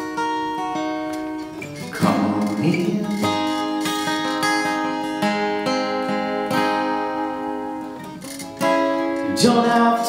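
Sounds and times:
acoustic guitar strummed: 0:00.0 - 0:10.0.

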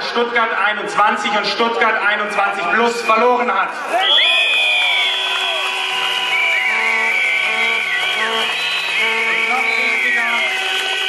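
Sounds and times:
whistles blowing: 0:02.8 - 0:11.0
horns blowing: 0:04.3 - 0:11.0.

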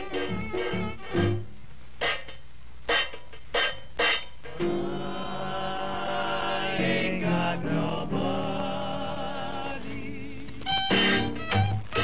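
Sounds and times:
jazz band chords: 0:00.0 - 0:12.0.

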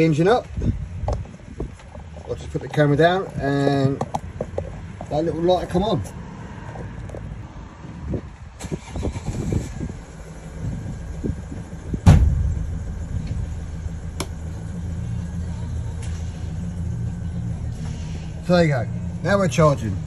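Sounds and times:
van engine starting and idling: 0:08.1 - 0:20.0.

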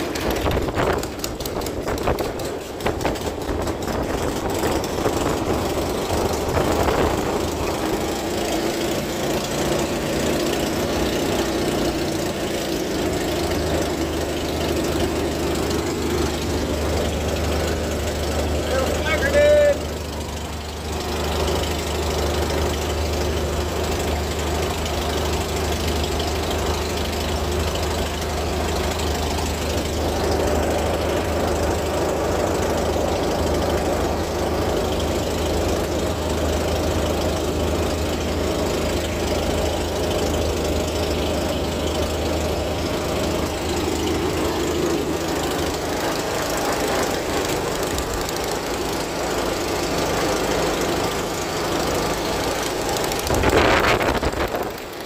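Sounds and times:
aircraft piston engine idling: 0:00.0 - 0:55.0.

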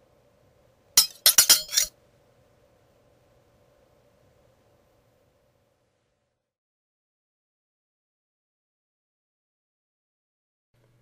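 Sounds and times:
glassy clinks: 0:01.0 - 0:01.9.

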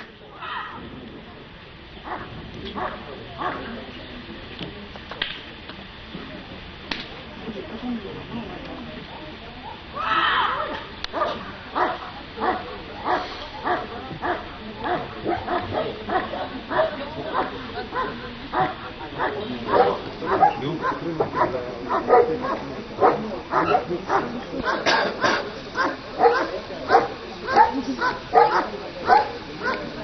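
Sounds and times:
dog barking: 0:02.0 - 0:03.7, 0:10.6 - 0:29.9.

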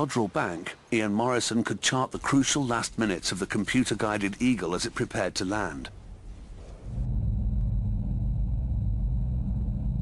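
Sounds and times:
deep low rumble: 0:06.0 - 0:10.0.

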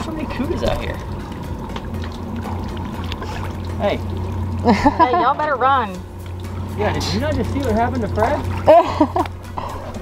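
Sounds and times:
boat engine idling: 0:00.0 - 0:10.0
water lapping against boat hull: 0:00.0 - 0:10.0.

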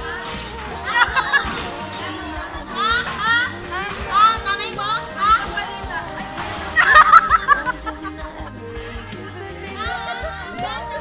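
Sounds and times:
background music: 0:00.0 - 0:11.0
children talking and calling out: 0:00.0 - 0:11.0.

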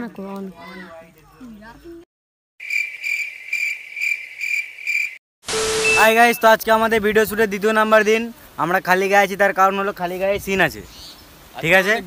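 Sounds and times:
cricket chirping: 0:02.6 - 0:05.2
burst of static hiss: 0:05.5 - 0:06.7.

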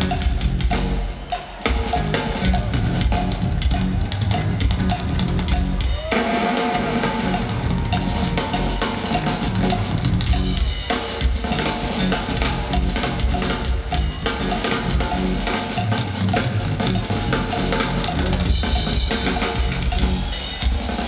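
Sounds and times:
rock band playing: 0:00.0 - 0:21.0
rock drum kit: 0:00.0 - 0:21.0.

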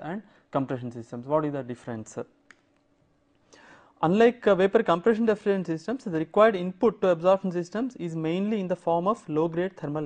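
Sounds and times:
man speaking: 0:00.0 - 0:02.4, 0:04.0 - 0:10.0
breath in: 0:03.4 - 0:04.0.

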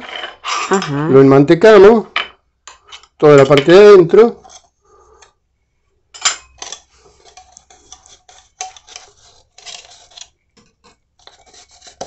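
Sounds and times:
metal utensil scraping gourd: 0:00.0 - 0:01.1, 0:02.7 - 0:05.3, 0:06.2 - 0:12.0.

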